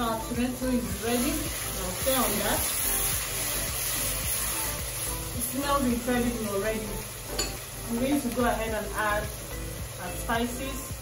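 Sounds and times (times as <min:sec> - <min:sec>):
background music: 0:00.0 - 0:11.0
vegetables sizzling in oil: 0:00.0 - 0:11.0.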